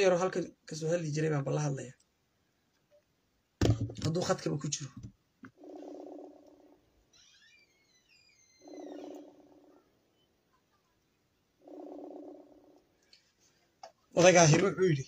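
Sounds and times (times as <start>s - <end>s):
high falling chirps: 5.6s - 10.5s
phone ringing buzz: 8.6s - 9.7s.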